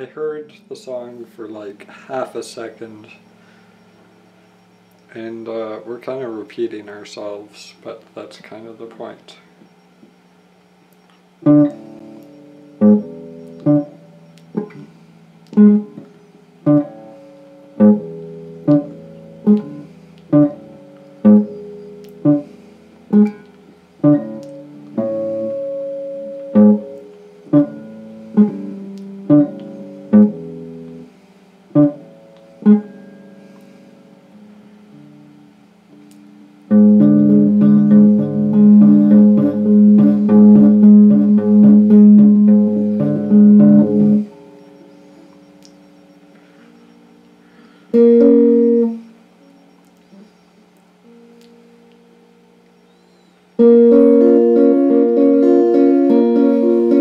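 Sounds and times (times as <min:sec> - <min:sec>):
electric guitar chords strummed: 0:11.2 - 0:50.3, 0:53.6 - 0:57.0.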